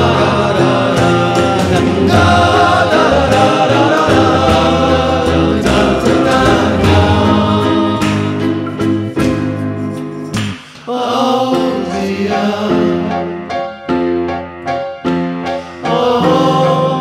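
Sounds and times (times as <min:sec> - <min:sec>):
choir-like singing: 0:00.0 - 0:08.9, 0:10.8 - 0:13.3, 0:15.6 - 0:17.0.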